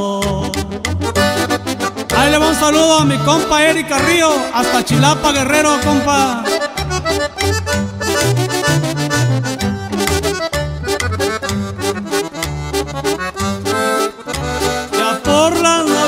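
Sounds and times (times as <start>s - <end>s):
accordion melody: 0.0s - 16.0s
held bass line: 0.0s - 16.0s
strummed rhythm: 0.0s - 16.0s.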